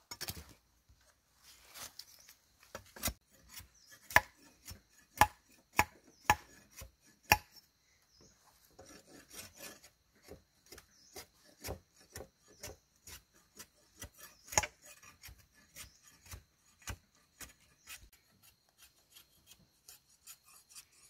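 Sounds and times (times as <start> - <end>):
machete chopping wood: 4.1 - 7.6, 14.0 - 14.8.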